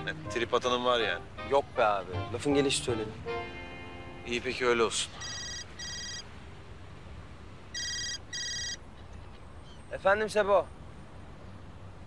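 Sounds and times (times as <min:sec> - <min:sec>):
mobile phone ringing: 0:05.2 - 0:06.2, 0:07.8 - 0:08.8.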